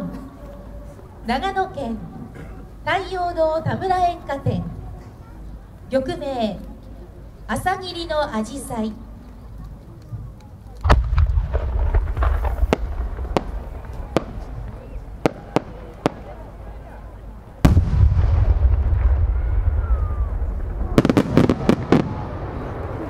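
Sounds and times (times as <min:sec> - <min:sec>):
cluster of small pops: 0:09.2 - 0:16.3
deep firework boom: 0:10.8 - 0:16.2, 0:17.6 - 0:23.0
sharp firework cracks: 0:10.8 - 0:16.5, 0:17.6 - 0:23.0.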